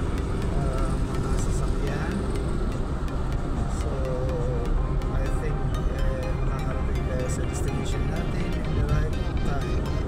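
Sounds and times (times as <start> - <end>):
car engine and tyre rumble: 0.0 - 10.0.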